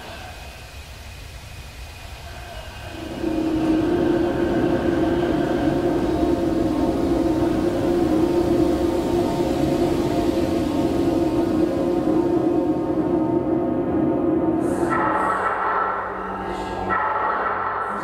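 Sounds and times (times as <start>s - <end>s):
ambient drone: 0.0s - 18.0s.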